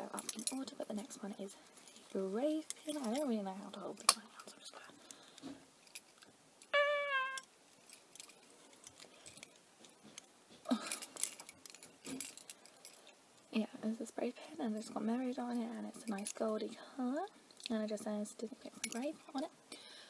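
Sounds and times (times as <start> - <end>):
metal pins clinking: 0.0 - 1.1, 1.8 - 4.2, 5.8 - 13.2
short steady pitched note: 6.8 - 7.4.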